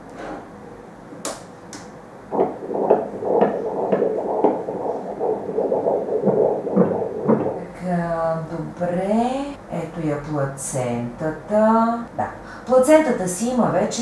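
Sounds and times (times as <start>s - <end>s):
doppler heartbeat whooshing pulse: 2.3s - 8.7s.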